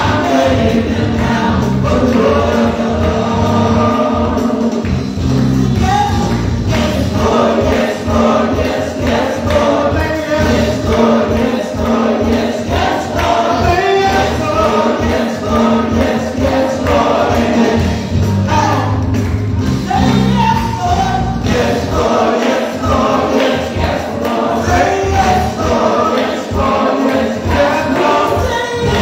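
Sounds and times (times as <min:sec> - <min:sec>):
group singing gospel song: 0:00.0 - 0:29.0
steady beat and bass: 0:00.0 - 0:29.0.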